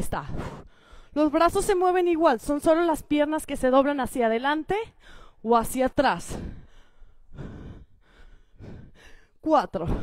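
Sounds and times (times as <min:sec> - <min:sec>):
woman breathing hard: 0:00.3 - 0:01.2, 0:05.0 - 0:05.5, 0:06.2 - 0:10.0.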